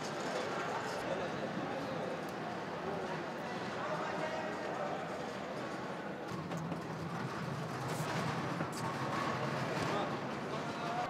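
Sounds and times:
murmur of voices: 0.0s - 6.4s.

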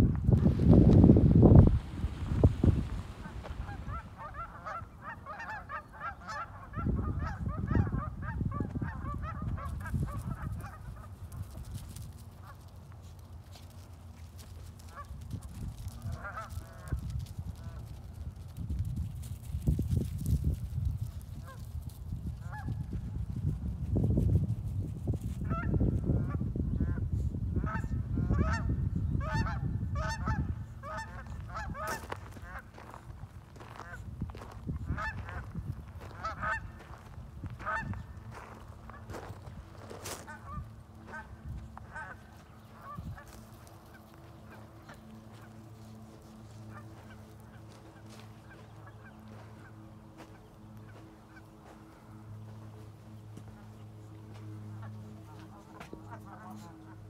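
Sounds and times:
geese honking: 2.7s - 11.2s, 14.8s - 17.8s, 27.6s - 57.0s.

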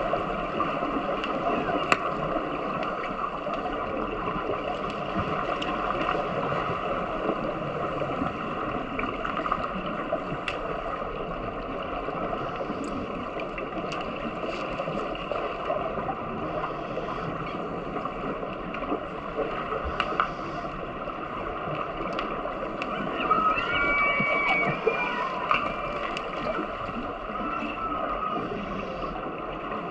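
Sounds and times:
underwater rushing water: 0.0s - 29.9s
faint clicks and knocks: 16.6s - 23.1s.

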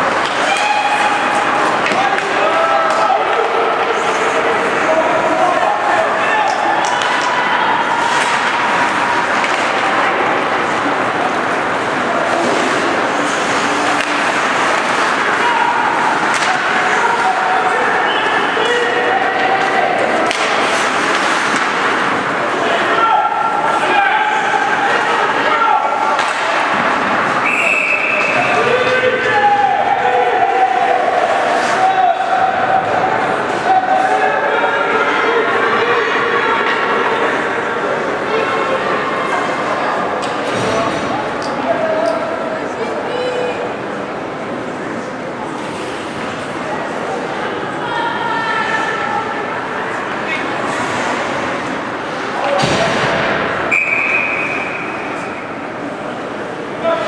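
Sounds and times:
spectators shouting: 0.0s - 39.1s.

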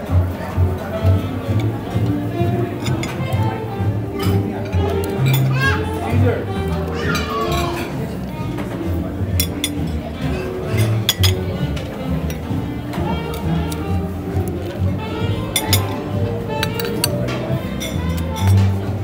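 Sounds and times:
background jazz music: 0.0s - 19.0s
metal tongs clinking: 16.6s - 17.2s, 17.8s - 18.7s.

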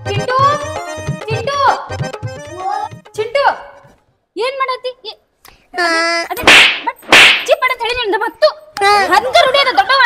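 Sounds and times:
sharp slap-like smacks: 6.4s - 7.6s.

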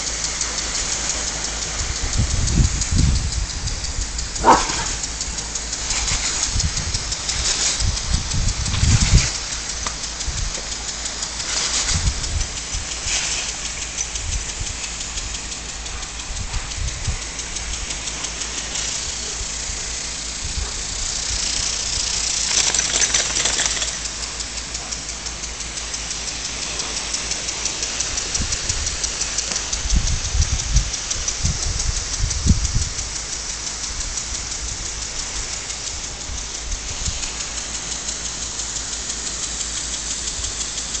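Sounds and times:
lawn sprinkler spraying water: 0.0s - 41.0s.

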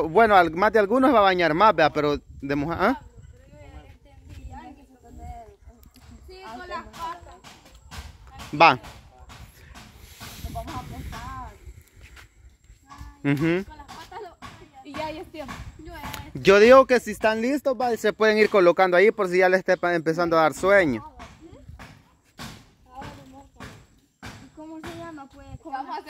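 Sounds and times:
breathy hiss: 9.6s - 12.4s.

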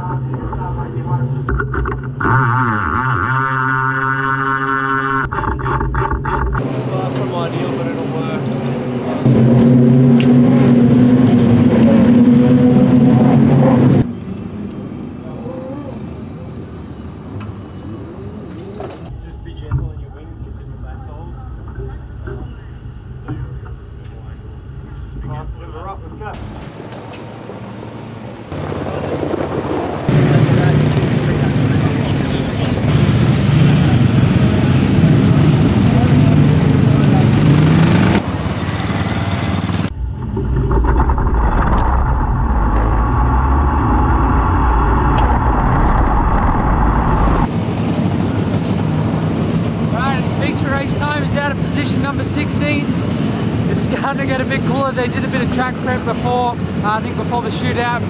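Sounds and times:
race car engines running: 0.0s - 16.8s, 17.4s - 58.0s.

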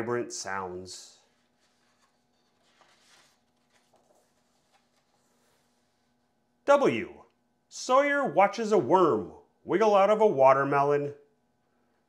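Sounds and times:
paper page being turned: 1.2s - 6.1s.

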